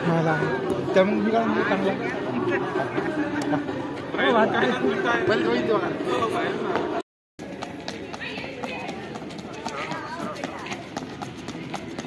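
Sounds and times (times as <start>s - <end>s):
running footfalls on brick pavers: 6.7s - 12.0s.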